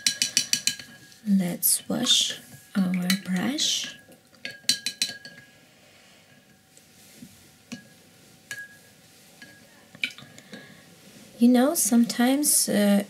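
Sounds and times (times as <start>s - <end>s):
brush stirring in water: 1.8s - 5.4s.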